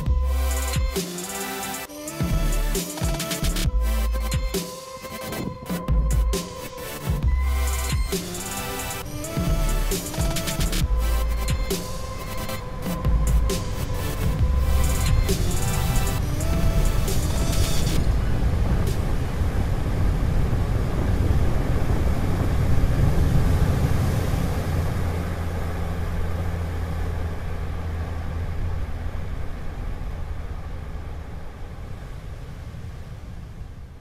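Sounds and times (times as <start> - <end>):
background music: 0.0 - 19.2
ocean surf: 0.0 - 34.0
wind on microphone: 3.7 - 34.0.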